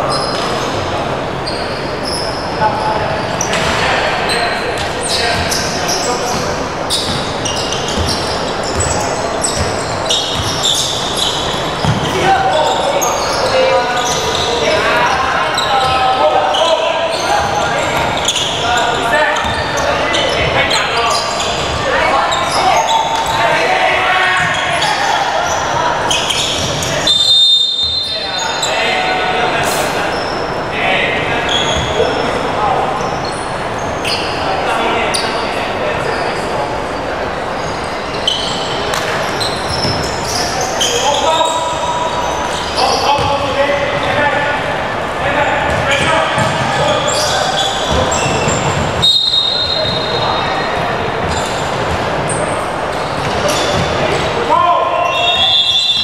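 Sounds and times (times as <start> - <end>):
sneaker squeaks: 0.0 - 44.6, 45.2 - 56.0
voices calling out: 0.0 - 56.0
basketball bouncing: 9.6 - 10.6, 11.8 - 12.1, 46.4 - 46.9.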